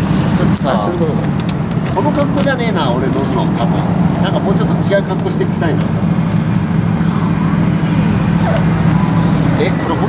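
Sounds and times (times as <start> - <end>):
idling vehicle engines humming: 0.0 - 10.0.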